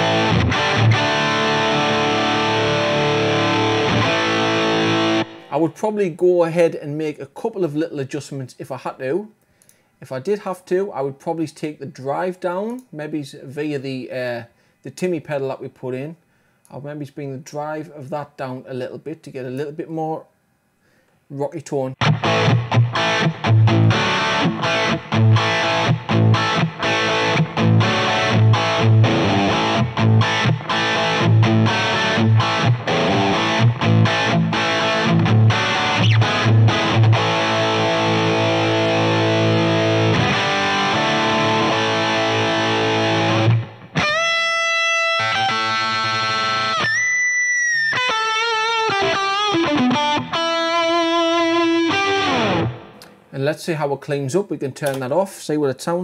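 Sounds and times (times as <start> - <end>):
distorted electric guitar: 0.0 - 5.5, 22.0 - 53.3.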